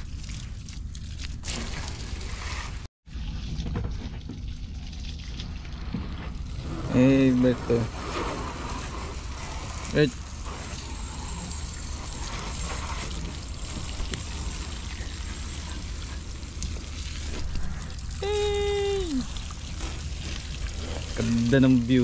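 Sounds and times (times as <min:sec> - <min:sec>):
garden hose spraying water: 0:00.0 - 0:03.6, 0:04.7 - 0:22.0.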